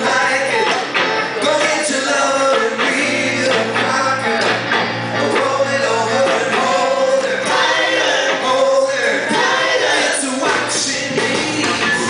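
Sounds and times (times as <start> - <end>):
live rock band playing: 0.0 - 12.0
man singing into a microphone: 0.0 - 12.0.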